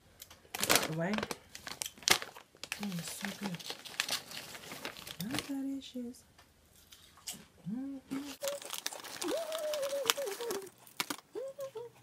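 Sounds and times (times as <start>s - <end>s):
packaging crinkling: 0.5s - 5.7s, 8.1s - 11.8s.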